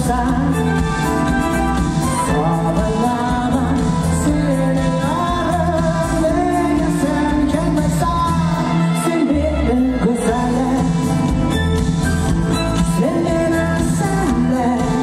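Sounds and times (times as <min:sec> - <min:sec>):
man singing into a microphone: 0:00.0 - 0:01.4, 0:02.1 - 0:11.6, 0:12.6 - 0:15.0
amplified backing music: 0:00.0 - 0:15.0.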